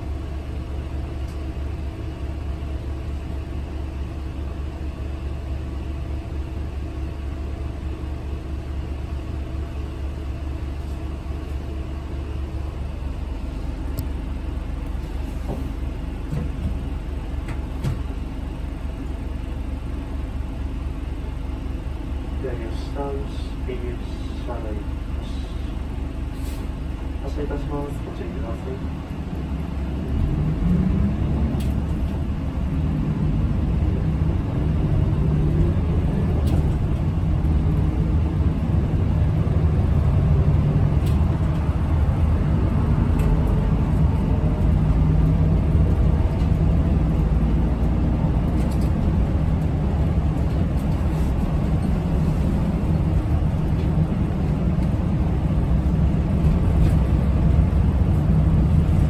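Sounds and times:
bus engine pulling away: 0:00.0 - 0:59.0
road noise: 0:00.0 - 0:59.0.

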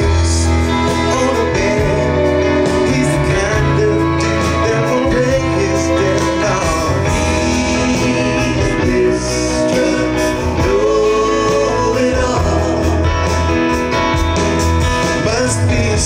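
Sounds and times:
bass: 0:00.0 - 0:16.0
drums: 0:00.0 - 0:16.0
electric guitar: 0:00.0 - 0:16.0
keyboards: 0:00.0 - 0:16.0.

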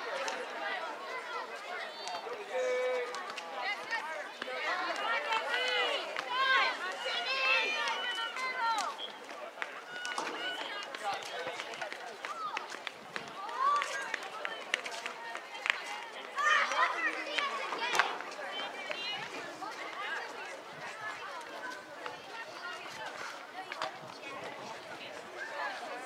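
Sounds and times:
voices calling and shouting: 0:00.0 - 0:26.0.

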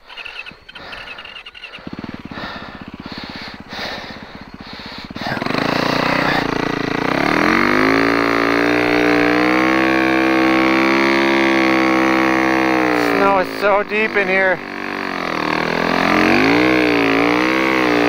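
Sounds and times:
snowbike engine revving: 0:00.0 - 0:18.0.

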